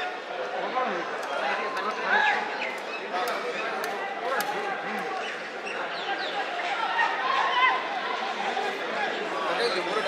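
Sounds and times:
voices calling out and chattering: 0.0 - 10.0.

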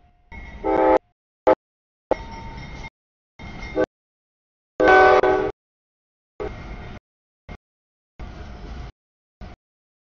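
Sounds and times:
locomotive air horn: 0.6 - 1.6, 4.8 - 5.6, 6.4 - 6.7.

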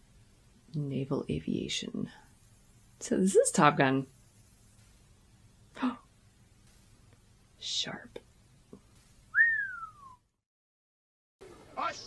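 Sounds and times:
person whistling: 9.3 - 10.2.

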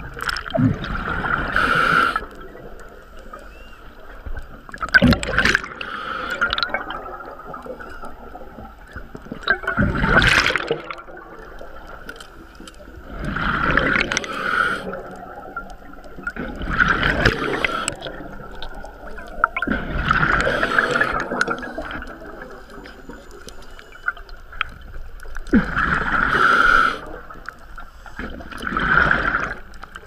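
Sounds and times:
exhaled bubbles gurgling underwater: 0.0 - 30.0.

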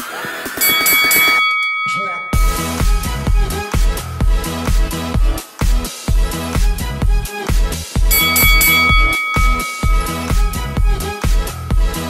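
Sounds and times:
bright timer chime: 0.6 - 3.3, 8.1 - 11.1
electronic dance music: 2.4 - 12.0.

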